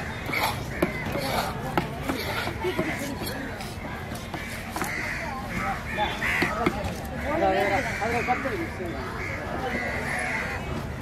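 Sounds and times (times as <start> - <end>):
crows cawing: 0.3 - 3.4, 4.2 - 10.7.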